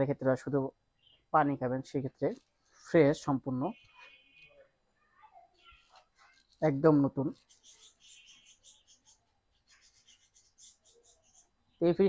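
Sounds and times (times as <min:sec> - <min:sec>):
faint high scratchy rustling: 0:02.1 - 0:11.8.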